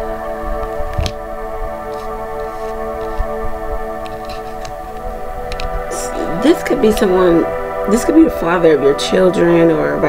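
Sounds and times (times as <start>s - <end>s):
ambient music with held tones: 0.0s - 10.0s.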